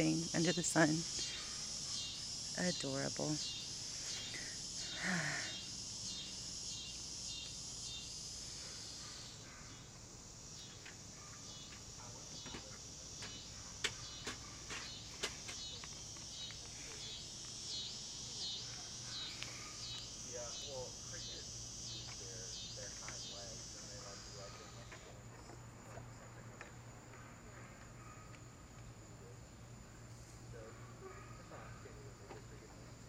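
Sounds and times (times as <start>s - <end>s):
insects chirping: 0.0s - 33.0s.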